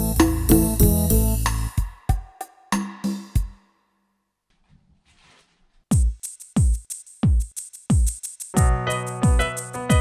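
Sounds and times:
piano chord: 8.6s - 10.0s.

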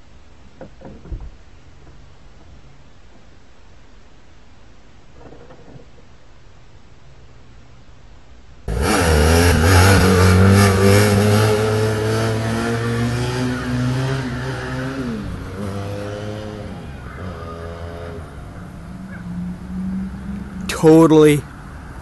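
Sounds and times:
motorcycle engine revving: 8.7s - 20.7s.

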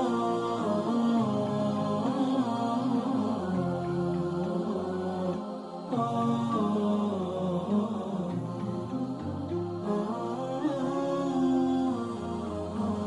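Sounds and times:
chant-like sung notes: 0.0s - 13.0s.

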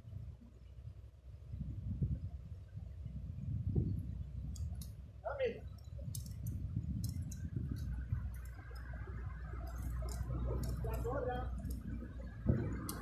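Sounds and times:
wind buffeting microphone: 0.0s - 13.0s
faint clicks: 4.5s - 5.0s, 5.7s - 13.0s.

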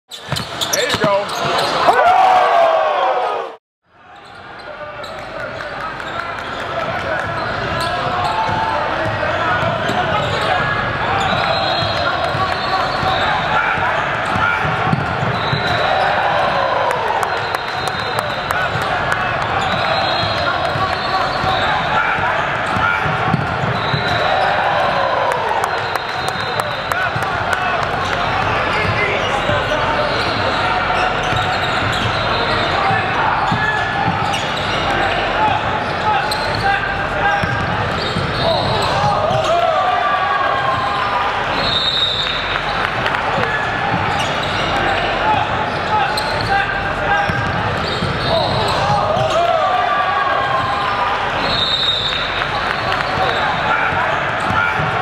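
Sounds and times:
sneakers squeaking on court: 0.1s - 1.9s, 4.1s - 16.4s, 17.2s - 39.8s, 40.6s - 49.8s, 50.4s - 55.0s.

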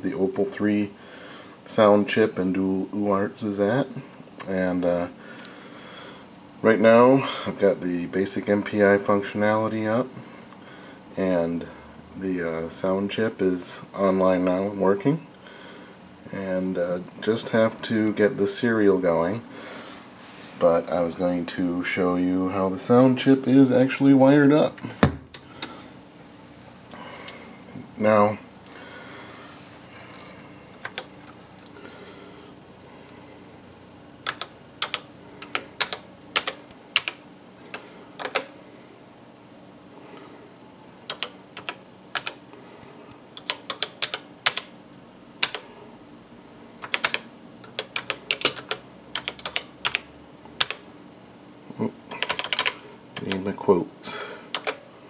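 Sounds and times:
faint steady hum: 0.0s - 55.0s
low room noise: 0.0s - 55.0s
keyboard keys clicking: 34.2s - 38.5s, 41.0s - 42.4s, 43.4s - 44.7s, 46.8s - 50.0s, 50.6s - 50.8s, 52.2s - 53.4s
sharp clicks: 34.2s - 38.5s.

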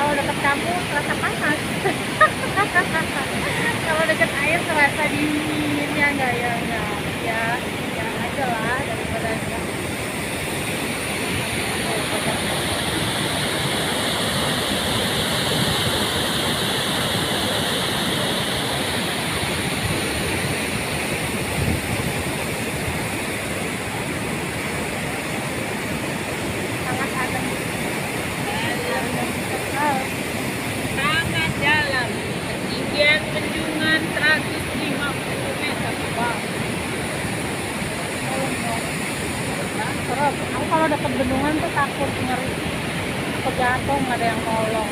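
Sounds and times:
floodwater rushing through weir: 0.0s - 44.9s.

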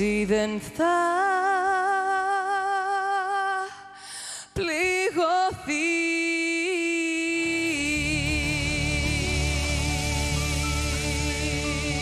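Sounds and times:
band with bass and drums: 8.0s - 12.0s.

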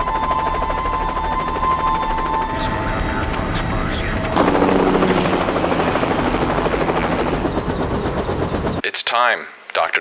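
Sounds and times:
helicopter rotor chop: 0.0s - 3.5s, 4.3s - 8.8s.

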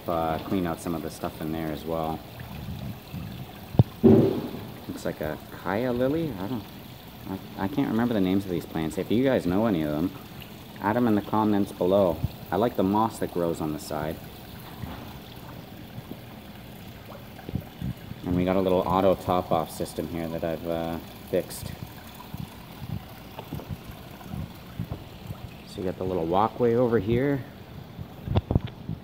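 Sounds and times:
small waterfall and stream running: 0.0s - 26.6s
short thump: 4.0s - 4.9s.

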